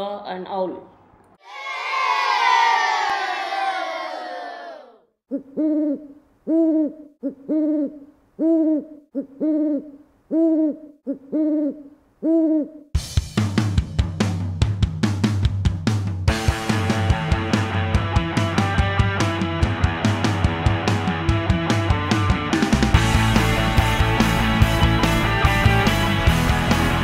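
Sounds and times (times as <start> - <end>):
owl hooting: 5.3 - 12.9
rock music with drums: 13.0 - 27.0.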